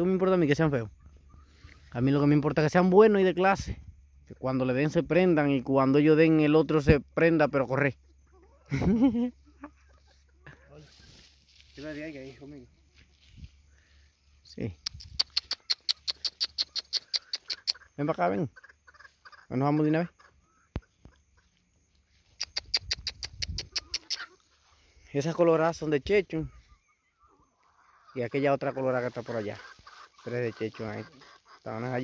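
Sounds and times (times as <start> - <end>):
chickens clucking: 0.0 - 3.2, 6.2 - 32.0
person making kissing clicks: 14.8 - 17.8, 22.4 - 24.2.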